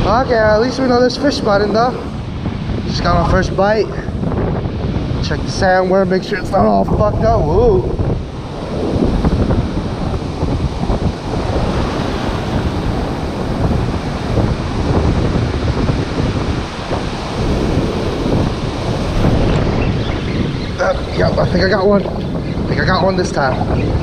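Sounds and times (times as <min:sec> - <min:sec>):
ocean surf breaking: 0:00.0 - 0:24.0
wind buffeting microphone: 0:00.0 - 0:24.0.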